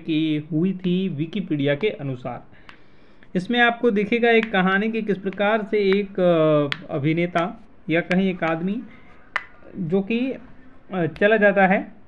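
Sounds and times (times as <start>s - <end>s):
person narrating: 3.3s - 12.0s.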